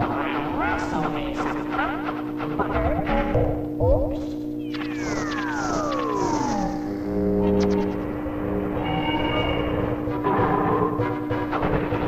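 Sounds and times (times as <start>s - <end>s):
cartoon music: 4.1s - 8.2s
falling pitch glide: 4.6s - 10.0s.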